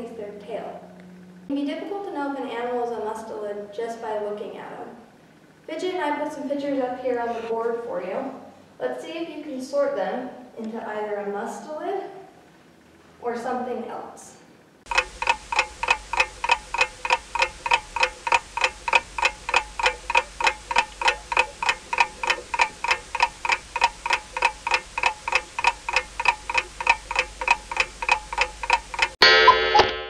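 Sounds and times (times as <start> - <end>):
clock ticking: 14.9 - 29.9
loud bell-like ring: 29.2 - 30.0.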